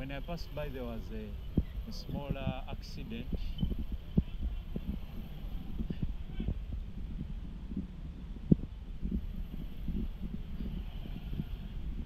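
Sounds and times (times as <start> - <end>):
motorcycle rumbling: 0.0 - 12.0.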